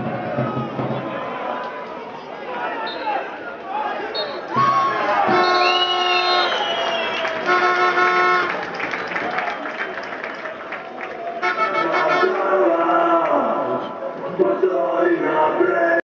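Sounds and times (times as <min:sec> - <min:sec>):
stadium crowd noise: 0:00.0 - 0:16.0
horn tones: 0:05.2 - 0:09.2, 0:11.3 - 0:12.6.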